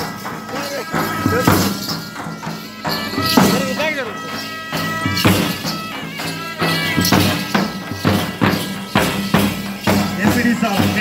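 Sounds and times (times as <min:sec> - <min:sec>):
percussion dance music: 0:00.0 - 0:11.0
sharp drum strokes: 0:00.0 - 0:11.0.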